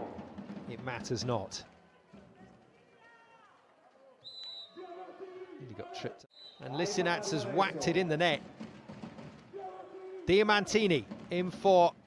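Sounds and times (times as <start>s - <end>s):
faint voices in sports hall: 1.5s - 7.7s
referee's whistle blast: 4.3s - 4.9s, 6.3s - 6.8s.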